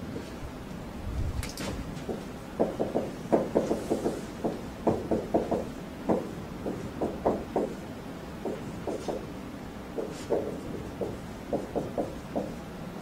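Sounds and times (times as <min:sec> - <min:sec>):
marker writing on whiteboard: 0:08.5 - 0:09.3, 0:10.0 - 0:12.6.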